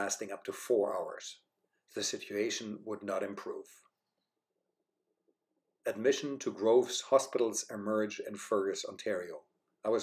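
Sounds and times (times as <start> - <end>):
man narrating: 0.0 - 1.4, 2.0 - 3.8, 5.9 - 10.0.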